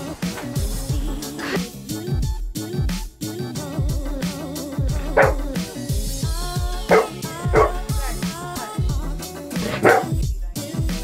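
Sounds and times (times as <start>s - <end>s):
background music with a beat: 0.0s - 11.0s
dog barking: 5.0s - 5.6s, 6.9s - 8.3s, 9.6s - 10.2s.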